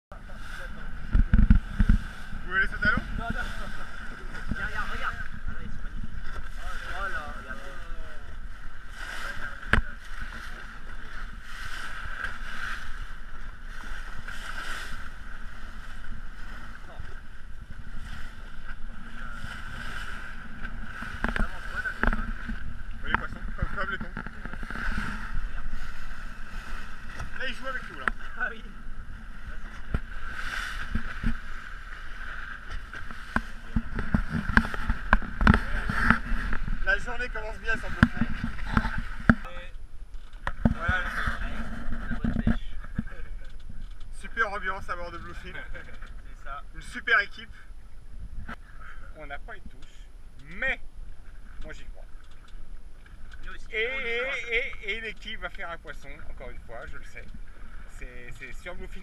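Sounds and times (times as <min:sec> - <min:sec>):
wind on microphone: 0:00.1 - 0:44.2, 0:47.7 - 0:48.8
motorboat engine drone: 0:00.1 - 0:59.0
water rushing past hull: 0:00.1 - 0:59.0.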